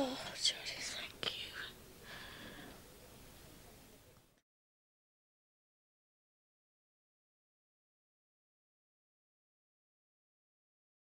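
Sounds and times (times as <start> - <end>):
person whispering: 0.0 - 1.8.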